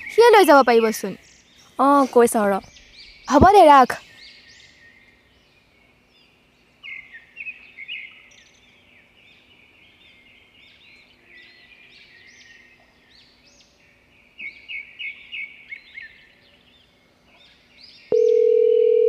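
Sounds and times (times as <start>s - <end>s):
small birds chirping: 0.0s - 18.2s
faint steady hum: 0.0s - 19.0s
telephone tone: 18.1s - 19.0s.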